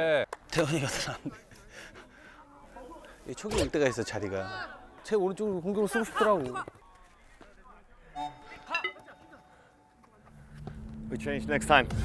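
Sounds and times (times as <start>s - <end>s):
background music: 8.2s - 12.0s.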